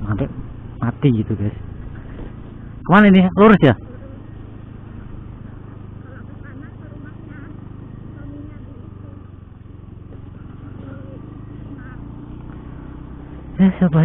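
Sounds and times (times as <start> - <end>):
road noise: 0.0 - 14.0
scooter engine cruising: 0.0 - 14.0.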